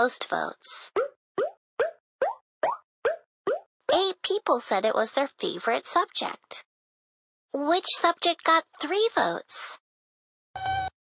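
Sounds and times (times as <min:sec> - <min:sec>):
cartoon bloop pops rising in pitch: 0:01.0 - 0:03.7.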